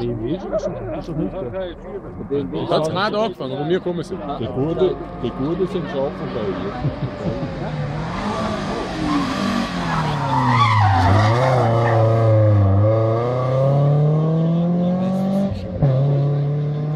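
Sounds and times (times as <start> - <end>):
rally car engine: 0.0 - 16.9
tyres squealing: 8.1 - 12.1.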